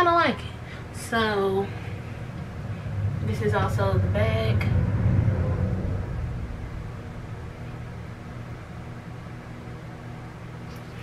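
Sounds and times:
low rumble: 0:00.0 - 0:10.6
steady low hum: 0:00.0 - 0:11.0.

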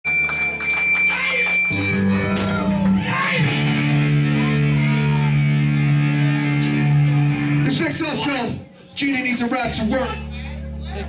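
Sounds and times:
live band bass and guitar: 0:00.1 - 0:08.6, 0:09.3 - 0:11.0.

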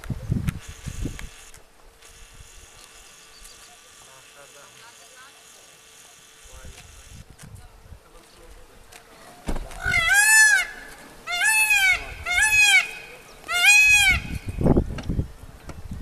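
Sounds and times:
peafowl calling: 0:09.7 - 0:14.9.

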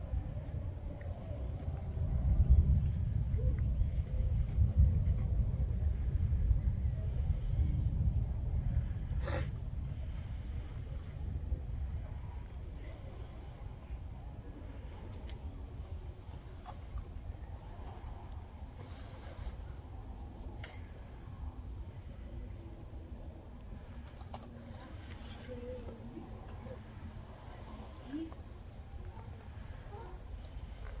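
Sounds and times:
constant low rumble: 0:00.0 - 0:31.0
high-pitched insect trill: 0:00.0 - 0:31.0.

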